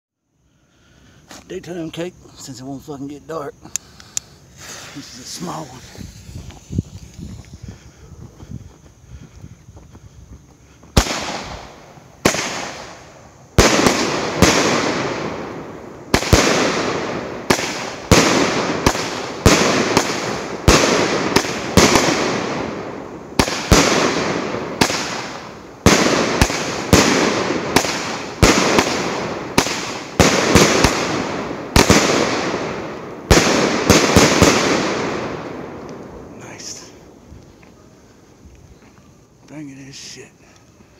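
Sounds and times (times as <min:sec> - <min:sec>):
firework fuse burning: 0:01.2 - 0:08.0, 0:10.9 - 0:38.8
firework sharp bangs: 0:03.7 - 0:07.3, 0:10.9 - 0:37.0.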